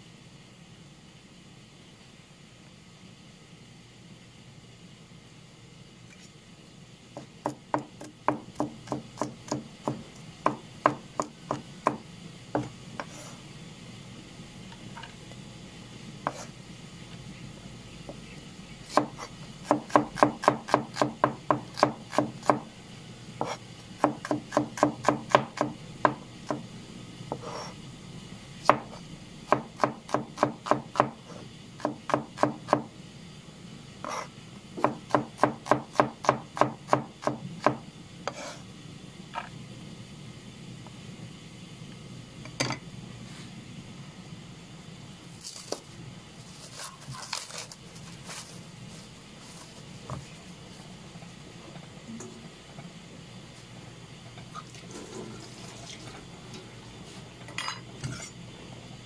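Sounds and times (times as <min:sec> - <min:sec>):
knife chopping on plastic board: 0:07.2 - 0:12.0, 0:18.9 - 0:22.7, 0:23.4 - 0:26.6, 0:29.5 - 0:31.2, 0:31.8 - 0:32.9, 0:34.0 - 0:38.4.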